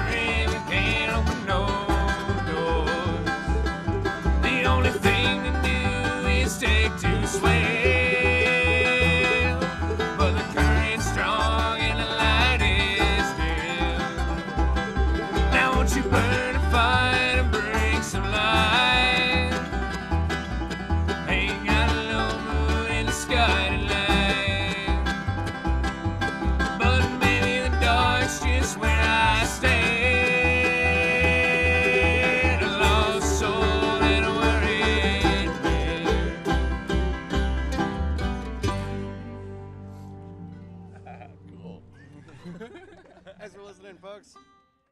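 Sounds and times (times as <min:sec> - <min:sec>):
upright bass beat: 0:00.0 - 0:41.9
banjo: 0:00.0 - 0:43.4
mandolin: 0:00.0 - 0:43.7
acoustic guitars: 0:00.0 - 0:44.8.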